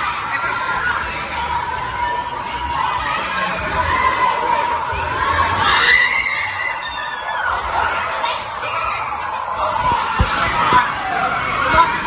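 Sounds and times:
kids shouting and cheering: 0.0 - 12.0.

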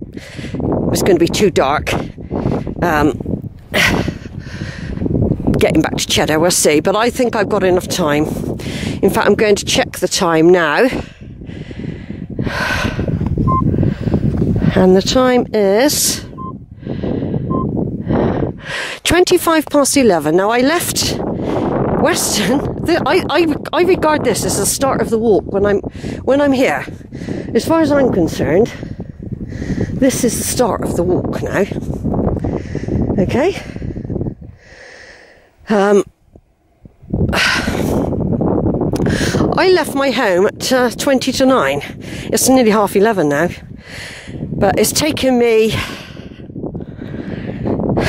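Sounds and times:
woman breathing hard: 0.0 - 0.7, 3.7 - 5.2, 8.6 - 9.0, 10.9 - 14.7, 16.7 - 19.0, 28.8 - 30.0, 32.3 - 35.6, 39.0 - 39.5, 42.0 - 42.4, 43.7 - 44.5, 45.8 - 48.0
wind noise on microphone: 0.0 - 48.0
woman speaking: 0.9 - 2.1, 2.8 - 3.2, 5.5 - 8.4, 9.0 - 11.0, 14.7 - 16.4, 19.0 - 21.2, 22.0 - 26.9, 27.5 - 28.8, 30.0 - 31.8, 33.2 - 33.8, 35.6 - 36.1, 39.4 - 43.6, 44.6 - 45.9.

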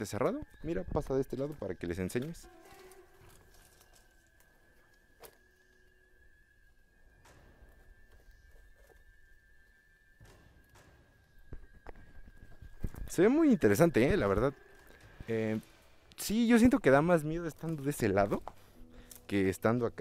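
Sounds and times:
faint steady high tone: 0.0 - 20.0
dry branches rustling: 0.5 - 6.2, 11.6 - 20.0
faint footsteps: 2.2 - 5.8.

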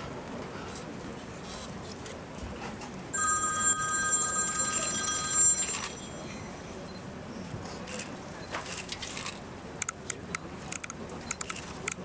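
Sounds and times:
electronic ringing tone: 3.2 - 7.0.

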